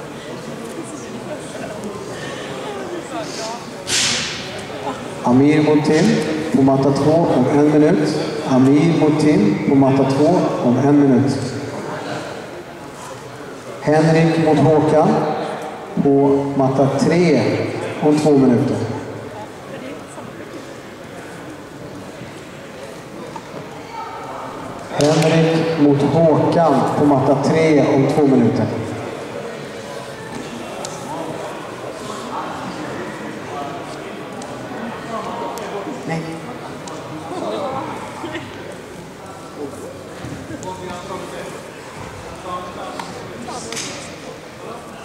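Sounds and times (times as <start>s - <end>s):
indistinct crowd chatter: 0.0s - 45.0s.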